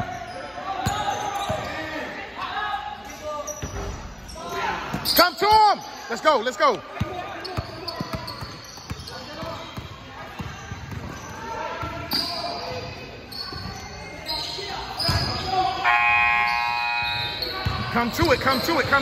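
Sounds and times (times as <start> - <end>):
basketball bouncing in hall: 0.0 - 2.0, 6.9 - 19.0
steady pitched tone: 15.8 - 17.6.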